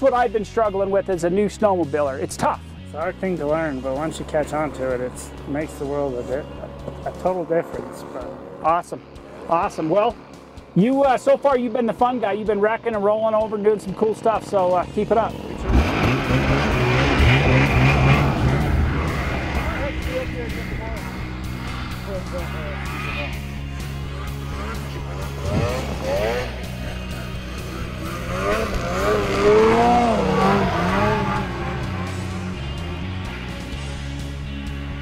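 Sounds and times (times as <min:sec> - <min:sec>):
music: 0:00.0 - 0:35.0
snowmobile engine revving: 0:00.0 - 0:35.0.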